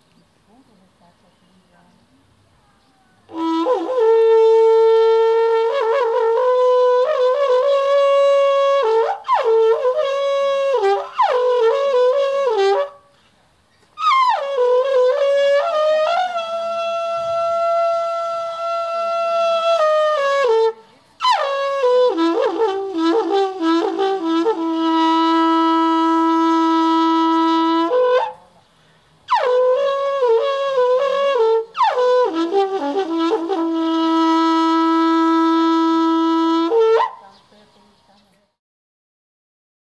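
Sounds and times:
alphorn playing: 3.3s - 13.2s, 14.0s - 28.6s, 29.3s - 37.4s.

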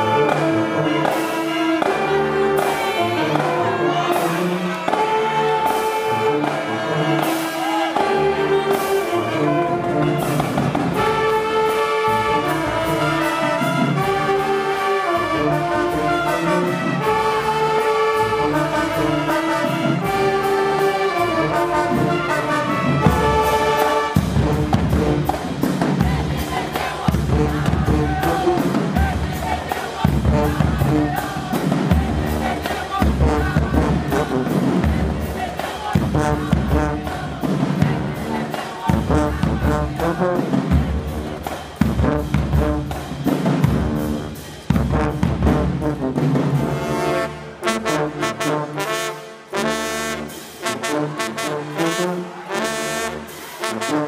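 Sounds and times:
marching band drums: 0.0s - 54.0s
marching band horns: 0.0s - 54.0s.

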